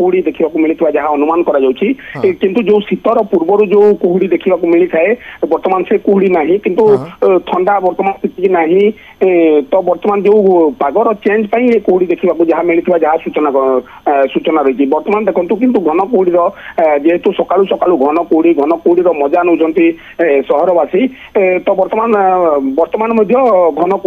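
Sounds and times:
man talking over telephone: 0:02.1 - 0:02.4, 0:06.8 - 0:07.2.

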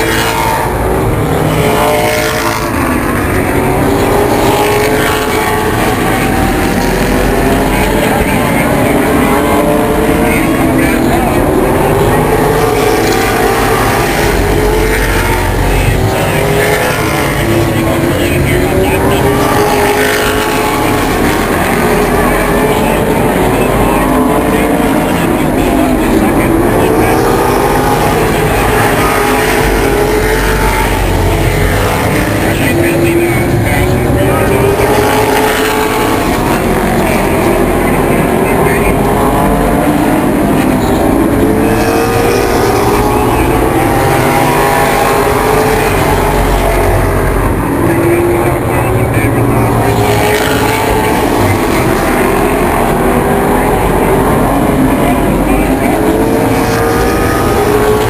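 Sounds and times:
race car engines passing: 0:00.0 - 0:58.0.

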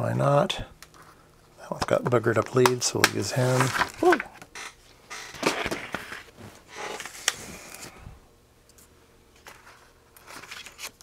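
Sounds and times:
paper rustling: 0:03.4 - 0:04.2, 0:09.4 - 0:11.0.

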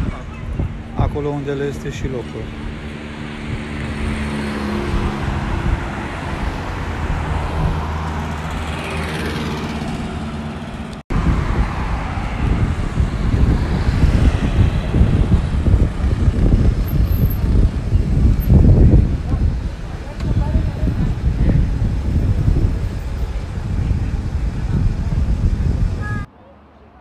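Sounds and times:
vehicle passing: 0:00.0 - 0:24.2
low rumble of traffic: 0:00.0 - 0:27.0
vehicle engines running: 0:00.0 - 0:27.0.

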